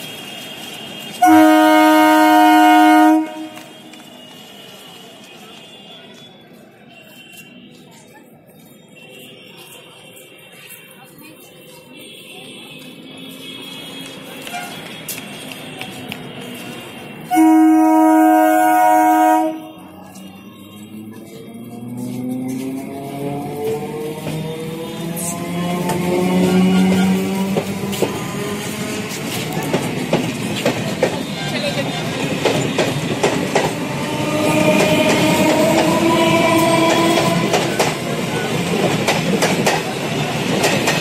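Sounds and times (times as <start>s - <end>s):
faint platform bustle: 0.0s - 41.0s
train horn blast: 0.4s - 4.0s, 17.2s - 20.1s, 24.7s - 28.9s, 31.2s - 38.7s
train rumble: 13.0s - 41.0s.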